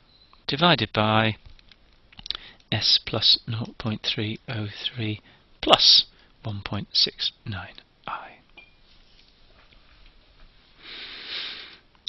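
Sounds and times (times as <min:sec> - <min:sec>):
man muttering softly: 0:07.1 - 0:08.5.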